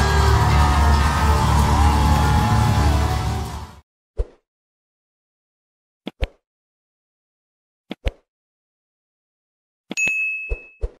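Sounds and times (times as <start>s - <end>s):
notification bell ding: 10.0s - 10.9s.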